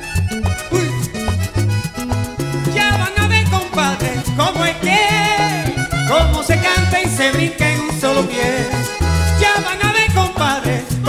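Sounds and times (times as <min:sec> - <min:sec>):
bass line of short notes: 0:00.0 - 0:11.0
button accordion: 0:00.0 - 0:11.0
congas and timbales: 0:00.0 - 0:11.0.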